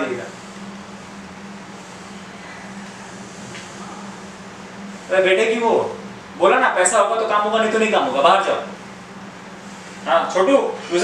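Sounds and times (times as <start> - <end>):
constant low hum: 0.0 - 11.0.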